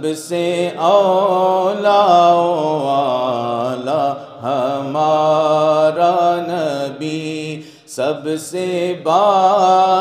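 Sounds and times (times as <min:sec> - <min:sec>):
man chanting unaccompanied: 0:00.0 - 0:10.0
breath: 0:07.6 - 0:07.9.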